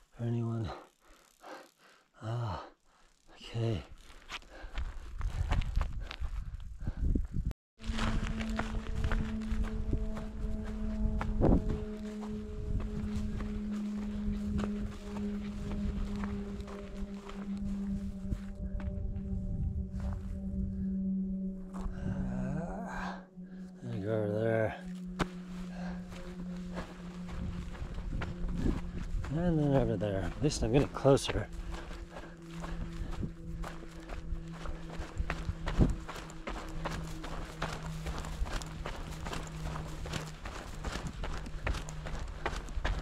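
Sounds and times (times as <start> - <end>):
steady low hum: 0.0 - 43.0
footsteps on grassy rocky trail: 3.7 - 6.7, 7.8 - 20.4, 23.9 - 43.0.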